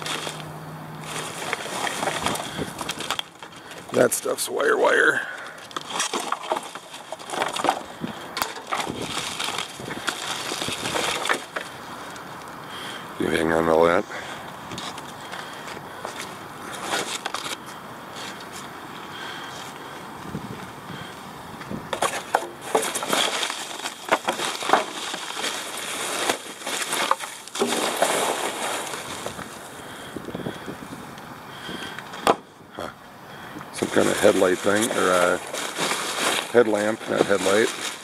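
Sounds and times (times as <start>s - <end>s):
plastic and paper crinkling: 0.0s - 12.6s, 14.7s - 18.7s, 21.9s - 29.8s, 33.7s - 38.0s.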